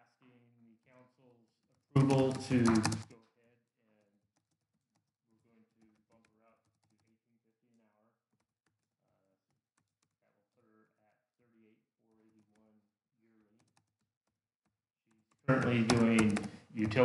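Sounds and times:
typing on a computer keyboard: 1.6 - 3.2, 4.3 - 7.2, 8.3 - 10.2, 12.2 - 12.7, 13.4 - 17.0
far-off voices: 2.0 - 3.0.

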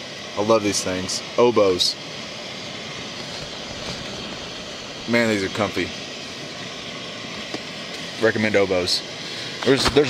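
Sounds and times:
camp stove burner hissing: 0.0 - 10.0.

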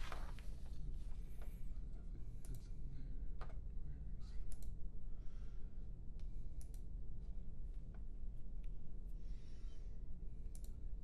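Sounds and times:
steady low hum: 0.0 - 11.0
computer mouse clicks: 4.5 - 4.8, 6.2 - 6.9, 10.5 - 10.8.

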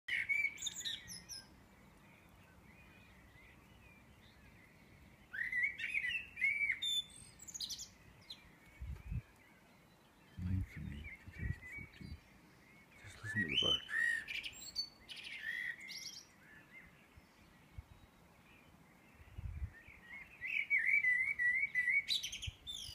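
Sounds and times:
songbirds chirping: 0.1 - 22.9.

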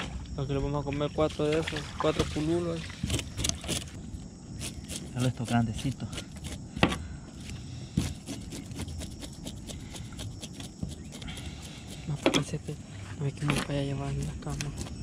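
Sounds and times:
knife scraping fish scales: 3.0 - 4.0, 4.6 - 12.7, 13.5 - 15.0.

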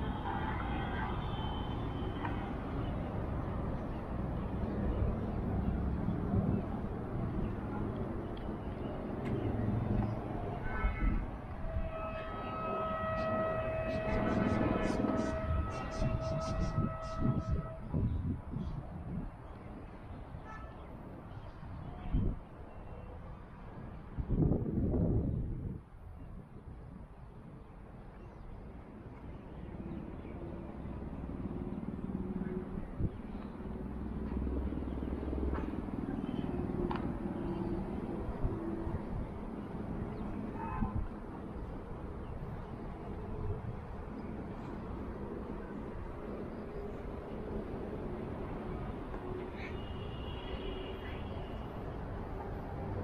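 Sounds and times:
long steady horn note: 0.0 - 3.0, 10.4 - 18.1, 49.1 - 51.9
distant road traffic rumble: 0.0 - 53.0.

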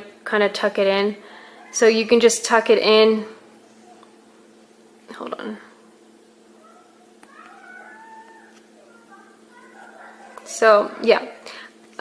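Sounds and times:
steady low hum: 0.0 - 12.0
faint wavering calls: 3.2 - 4.8, 5.8 - 11.1.

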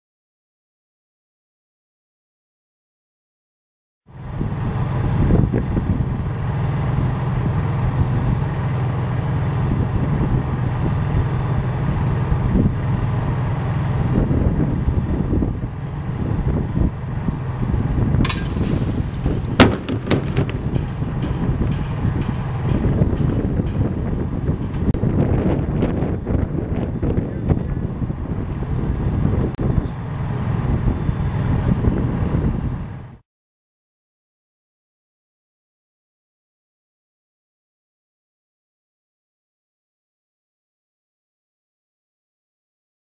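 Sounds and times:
steady low hum: 4.1 - 33.2
wind rumbling on microphone: 4.2 - 33.2
loud metal impact bang: 18.2 - 25.0.

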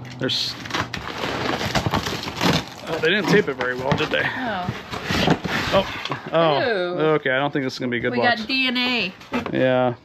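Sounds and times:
contents rustling and scraping: 0.2 - 6.4.

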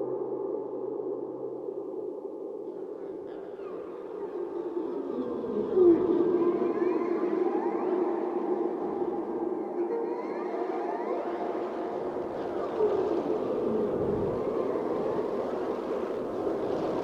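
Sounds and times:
thin gliding tones: 2.9 - 17.0.

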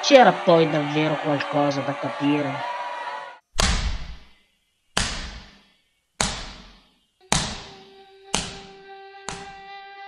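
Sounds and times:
ball kicked with echoing thuds: 3.6 - 4.3, 5.0 - 5.6, 6.2 - 7.8.

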